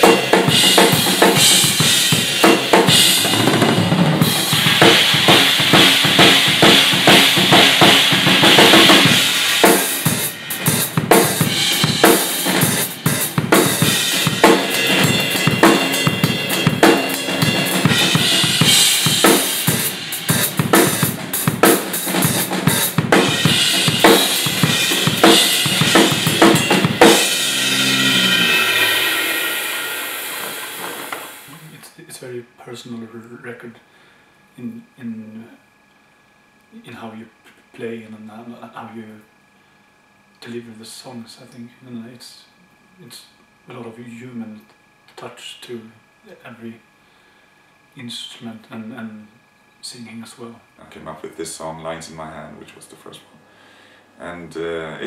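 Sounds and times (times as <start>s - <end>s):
cymbals ringing: 0.0s - 31.6s
drum kit played fast: 0.0s - 31.7s.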